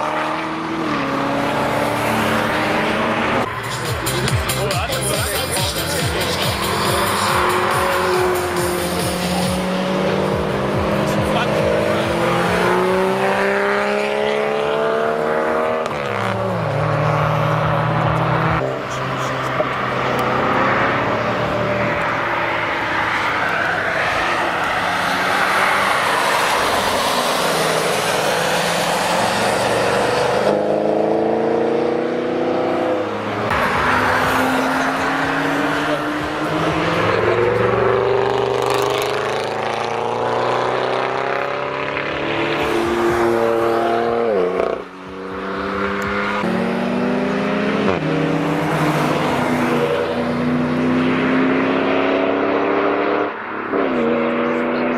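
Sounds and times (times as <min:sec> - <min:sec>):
cars accelerating past: 0:00.0 - 0:54.9.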